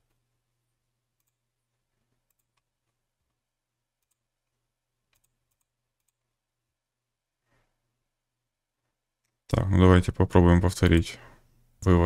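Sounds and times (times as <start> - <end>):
computer mouse clicks: 1.2 - 1.4, 2.2 - 3.0, 4.0 - 4.2, 5.1 - 6.2.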